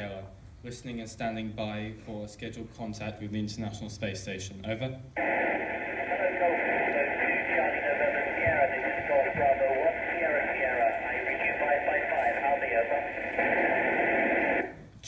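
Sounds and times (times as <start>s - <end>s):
faint garbled radio voices: 5.2s - 14.8s
radio static hiss: 5.2s - 15.0s.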